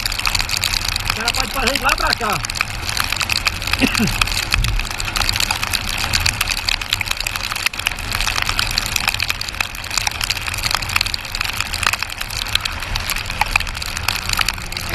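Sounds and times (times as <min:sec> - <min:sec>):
rain crackling on microphone: 0:00.0 - 0:14.9
wind rumble: 0:00.0 - 0:14.9.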